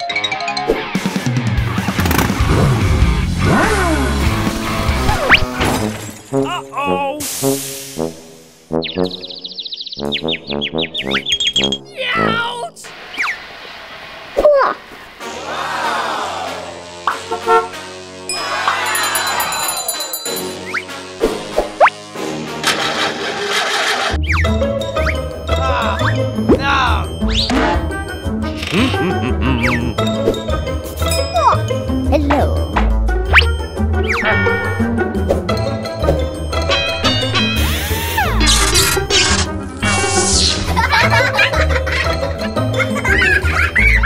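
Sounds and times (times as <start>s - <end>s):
background music: 0.0s - 12.8s, 15.2s - 44.0s
dirt bike engine revving: 1.7s - 5.6s, 22.2s - 24.2s
car engine starting whir: 22.5s - 24.2s.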